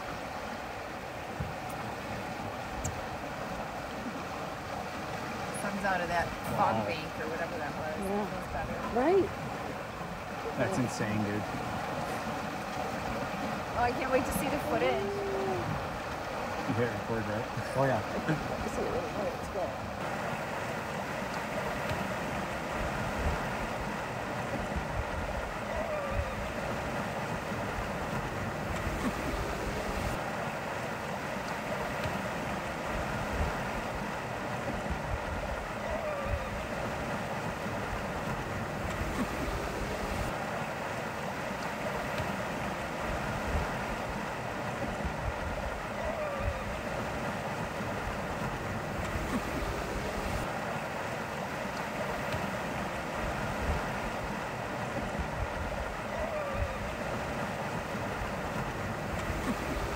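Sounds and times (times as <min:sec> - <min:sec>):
water rushing: 0:00.0 - 0:59.9
water surging: 0:00.0 - 0:59.9
wind: 0:00.0 - 0:59.9.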